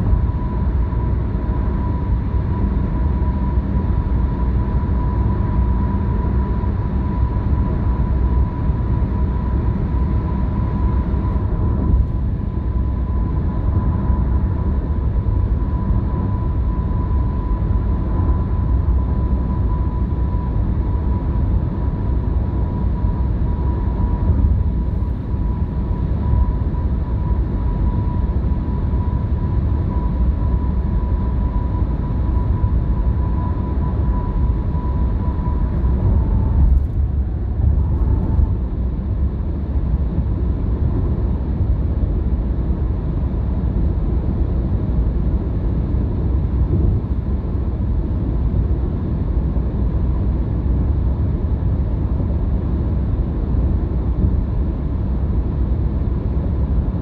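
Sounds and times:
faint high whine: 0:00.0 - 0:57.0
low engine hum: 0:00.0 - 0:57.0.

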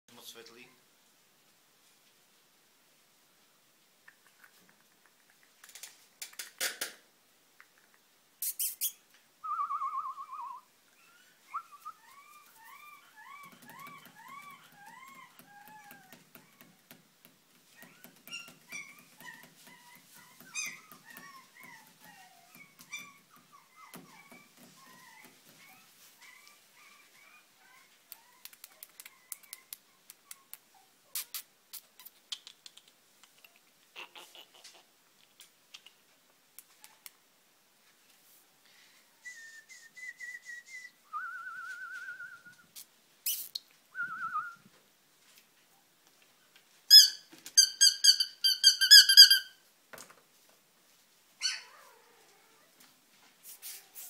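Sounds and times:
puppy whimpering: 0:10.4 - 0:16.9, 0:17.8 - 0:31.3, 0:51.4 - 0:52.7.

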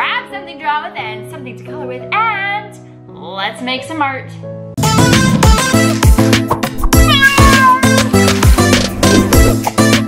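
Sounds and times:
upbeat music with steady beat: 0:04.8 - 0:10.0
cat meow: 0:07.0 - 0:08.1.

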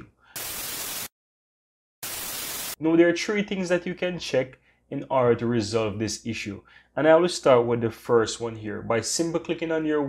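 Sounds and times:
burst of hissing static: 0:00.0 - 0:01.1, 0:02.0 - 0:02.8.

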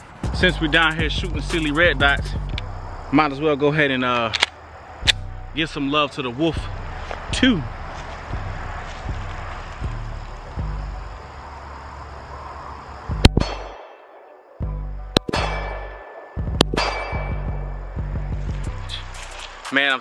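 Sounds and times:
music with heavy bass beat: 0:00.0 - 0:03.0, 0:06.5 - 0:11.2, 0:13.1 - 0:13.6, 0:14.6 - 0:20.0.

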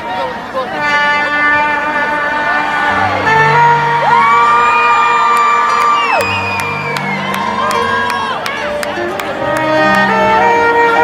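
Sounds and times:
live concert music: 0:00.0 - 0:11.0
crowd cheering and whooping: 0:02.6 - 0:09.2.

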